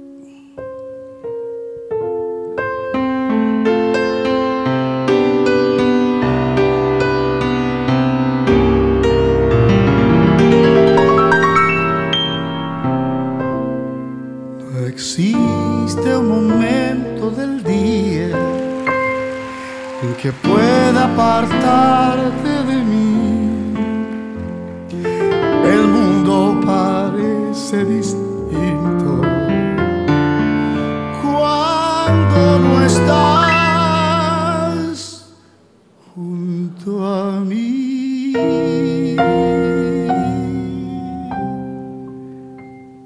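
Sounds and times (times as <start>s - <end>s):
grand piano playing: 0.0s - 35.2s, 38.2s - 43.0s
man singing: 14.6s - 18.9s, 19.7s - 30.0s, 30.7s - 35.4s, 36.0s - 42.0s.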